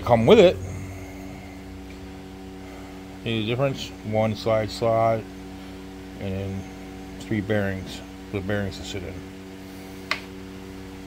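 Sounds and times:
faint high whine: 0:00.0 - 0:11.0
steady low hum: 0:00.0 - 0:11.0.

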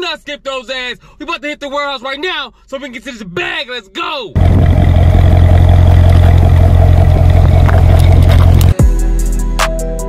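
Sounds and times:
car engine droning: 0:04.4 - 0:08.8.

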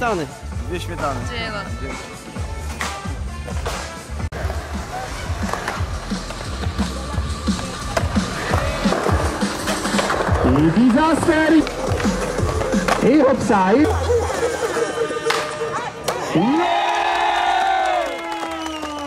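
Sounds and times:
background music with steady beat: 0:00.0 - 0:16.5
skateboard wheels rolling: 0:02.2 - 0:17.8
skateboard clacking: 0:02.7 - 0:13.6, 0:15.2 - 0:16.3.

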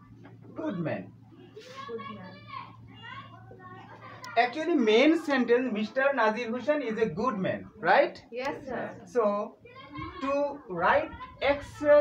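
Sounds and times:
children talking: 0:00.0 - 0:07.6, 0:08.4 - 0:12.0.

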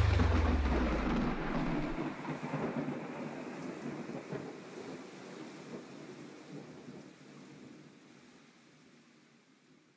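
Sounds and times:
thunder rumble: 0:00.0 - 0:04.0
rain hiss: 0:00.0 - 0:09.0.

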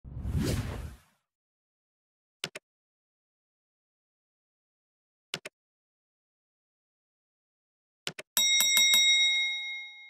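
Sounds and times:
whoosh: 0:00.0 - 0:01.1.

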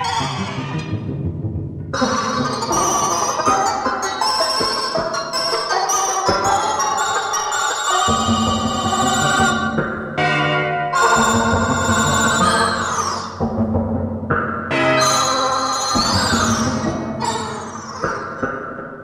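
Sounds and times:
electronic music: 0:00.0 - 0:13.7, 0:14.7 - 0:19.0.

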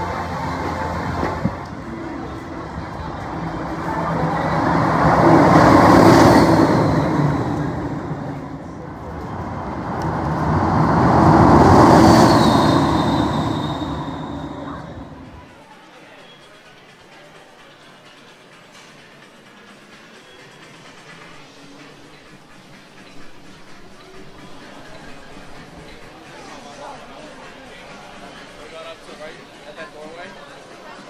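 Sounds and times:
ride vehicles rushing past: 0:00.0 - 0:15.5.

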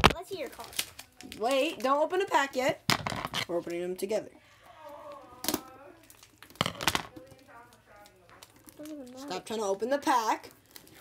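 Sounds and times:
foil card pack crinkling: 0:00.0 - 0:02.0, 0:05.6 - 0:11.0
faint voices: 0:04.6 - 0:09.4.

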